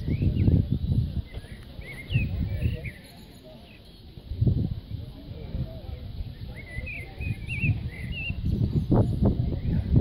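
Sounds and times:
songbird warbling: 6.4 - 9.1.

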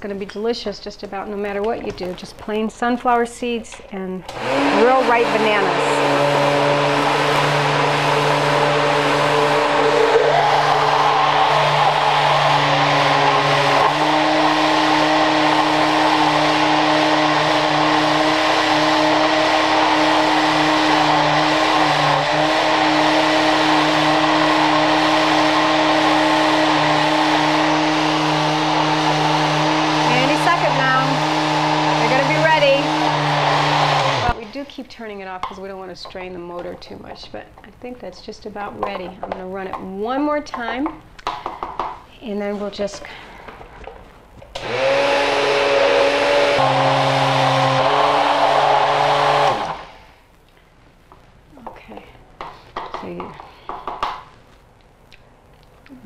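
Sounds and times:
blender motor running: 4.3 - 34.6, 44.6 - 50.1.

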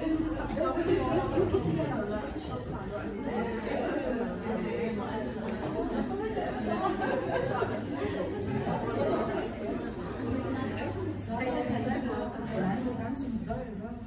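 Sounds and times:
group of people chattering: 0.0 - 14.0.

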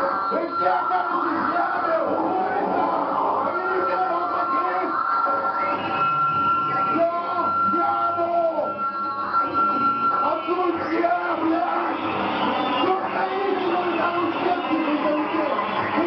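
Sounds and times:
steady high tone: 0.0 - 16.0.

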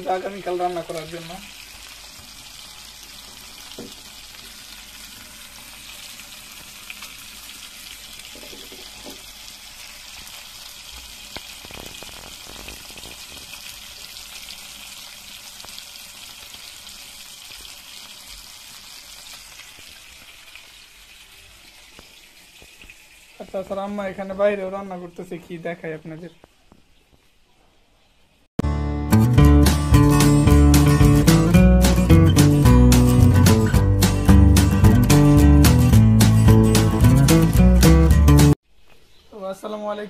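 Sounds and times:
fish sizzling in hot oil: 0.0 - 23.8
oil crackling: 0.0 - 25.8.

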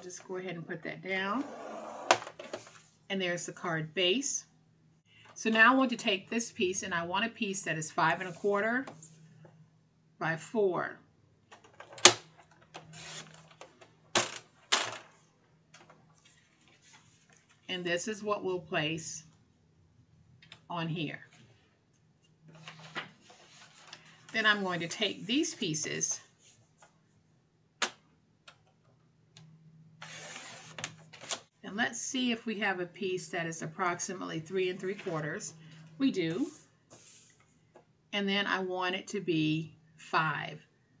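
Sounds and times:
card rustling: 30.0 - 31.4
trimmer blade cutting card: 30.0 - 31.4.

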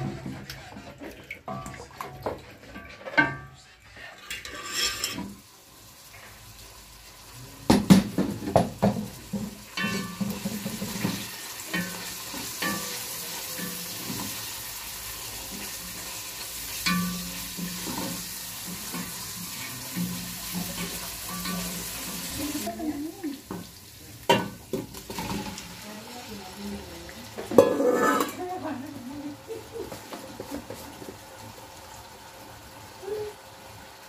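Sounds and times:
wooden spoon scraping a pot: 0.0 - 5.4, 27.4 - 28.5
onions sizzling in a pot: 1.5 - 34.0
pot and dishes knocking: 7.7 - 12.0.

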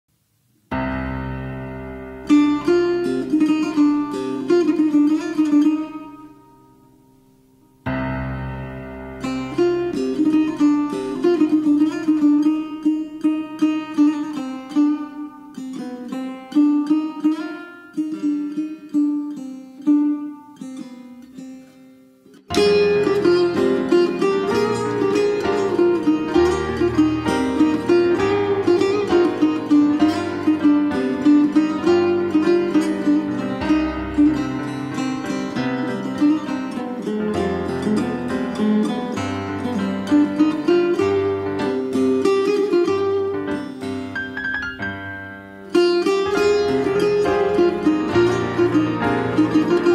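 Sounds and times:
piano: 0.6 - 49.9
plucked lute melody: 0.7 - 49.9.

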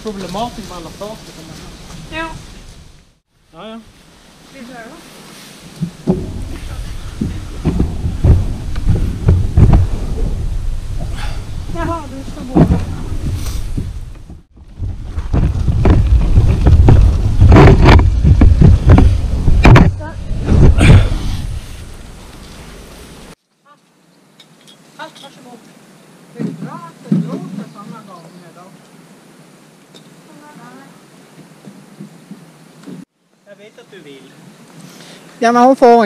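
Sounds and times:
kayak hull scraping over grass: 4.0 - 23.4.

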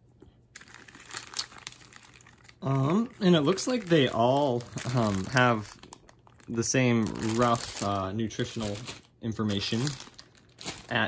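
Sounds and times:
plastic candy bags crinkling: 0.5 - 11.0.

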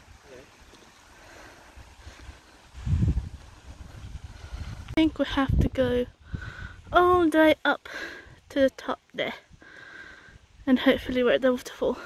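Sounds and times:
faint steady hiss: 0.0 - 12.0
wind buffeting microphone: 1.6 - 7.5.

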